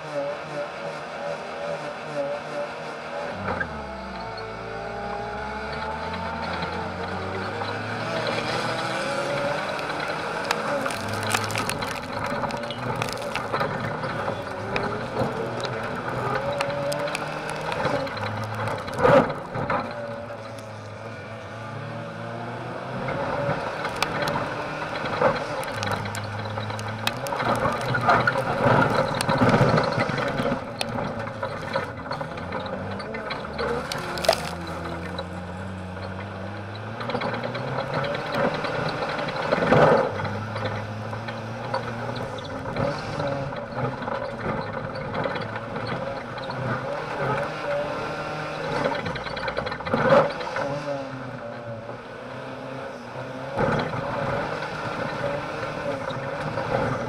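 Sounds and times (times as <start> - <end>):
car engine revving: 0.0 - 57.0
car body rattling and banging: 7.6 - 21.0, 23.2 - 36.4.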